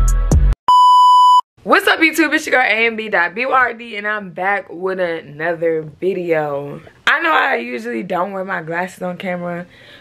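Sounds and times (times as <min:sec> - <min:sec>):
intro music: 0:00.0 - 0:00.6
electronic beep: 0:00.7 - 0:01.4
woman speaking: 0:01.6 - 0:09.8.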